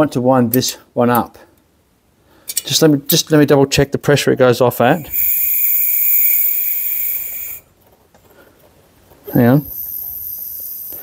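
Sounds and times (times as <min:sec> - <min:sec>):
compressed air hissing: 0:05.0 - 0:07.7, 0:09.4 - 0:11.0
faint steady whistle: 0:05.0 - 0:07.7, 0:09.6 - 0:11.0.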